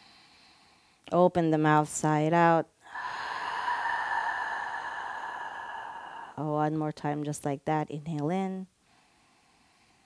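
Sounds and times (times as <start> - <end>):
woman exhaling: 2.8 - 6.6.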